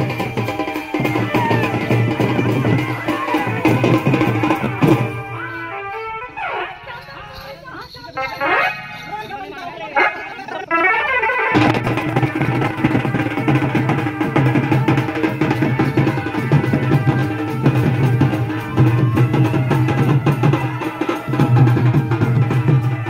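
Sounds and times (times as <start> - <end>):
drums and cymbals band: 0.0 - 9.8, 10.4 - 23.0
people shouting calls: 0.0 - 23.0.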